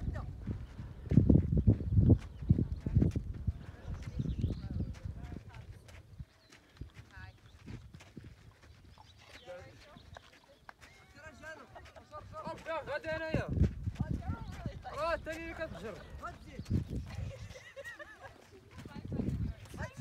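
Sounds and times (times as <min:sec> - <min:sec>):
riders chatting faintly: 0:02.2 - 0:07.6.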